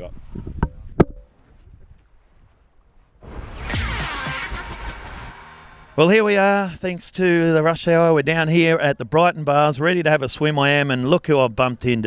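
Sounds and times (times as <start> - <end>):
faint low wind noise: 0.0 - 3.7
brief ringing tone: 3.7 - 6.3.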